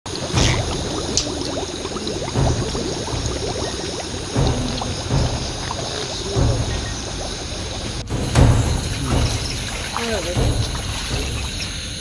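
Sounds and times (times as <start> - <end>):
gas bubbling up through muddy water: 0.0 - 12.0.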